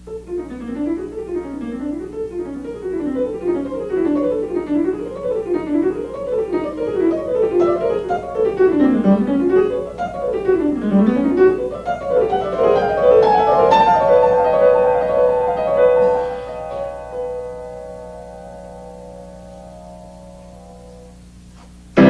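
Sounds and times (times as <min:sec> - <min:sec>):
solo piano fast runs: 0:00.0 - 0:22.0.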